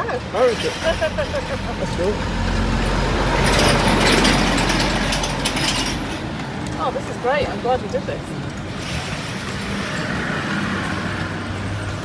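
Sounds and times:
low road rumble: 0.0s - 12.0s
carriage wheels rattling: 3.4s - 7.0s.

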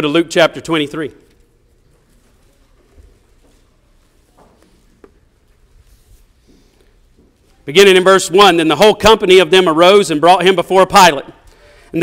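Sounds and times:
man speaking into a microphone: 0.0s - 1.3s, 7.6s - 12.0s.

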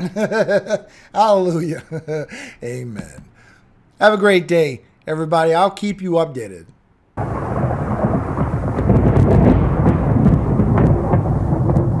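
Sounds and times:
rain: 7.2s - 12.0s
thunder rumbling and crackling: 7.2s - 12.0s.

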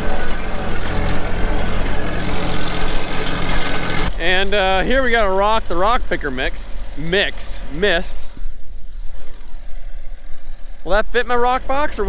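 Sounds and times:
tractor engine idling: 0.0s - 12.0s.

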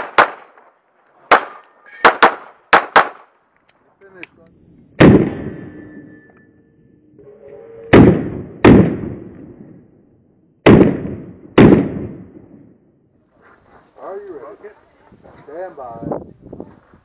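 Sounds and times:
pistol shots echoing: 0.0s - 0.6s, 1.3s - 3.3s.

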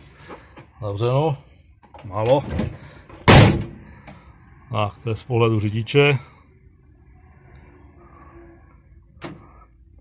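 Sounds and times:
truck door slamming: 2.5s - 3.8s.

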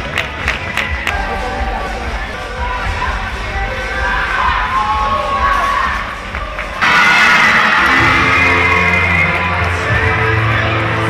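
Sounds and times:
music with steady bass line: 0.0s - 6.8s, 7.7s - 11.0s
women cheering and shouting: 1.2s - 9.7s.

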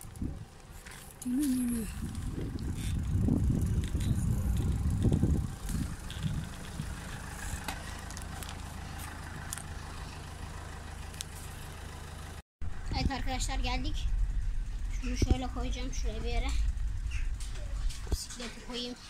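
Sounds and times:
low rumbling on microphone: 0.0s - 10.7s, 12.6s - 18.8s
car engine humming: 0.0s - 19.0s.

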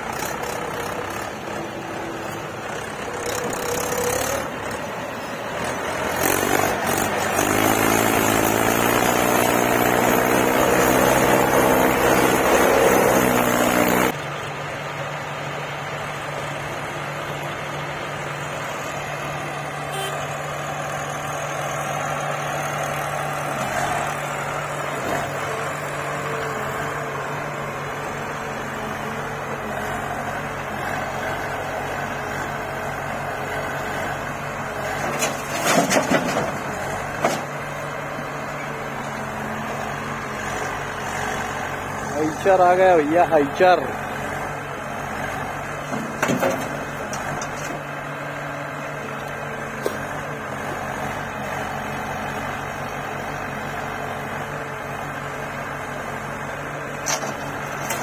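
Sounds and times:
diesel engines running steadily: 0.0s - 58.0s
tractor engine under load: 0.0s - 58.0s.

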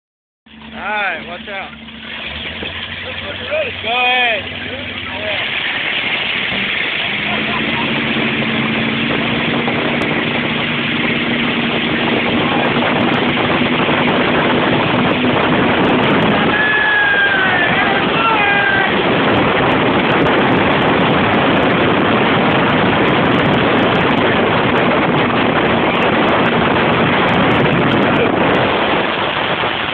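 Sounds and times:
motorboat engine: 0.5s - 29.9s
rushing wind: 0.5s - 29.9s
water rushing from wake: 0.5s - 29.9s.

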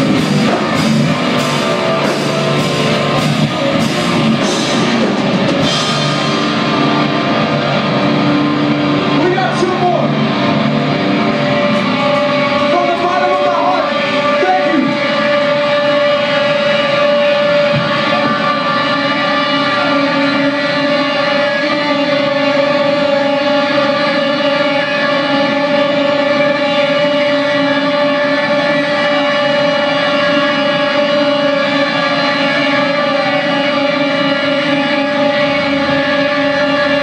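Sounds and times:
electric guitar feedback drone: 0.0s - 37.0s.

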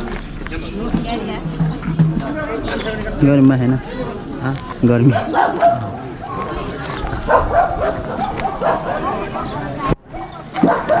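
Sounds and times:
dog barking and yipping: 5.1s - 6.4s, 7.2s - 9.3s, 10.6s - 11.0s.

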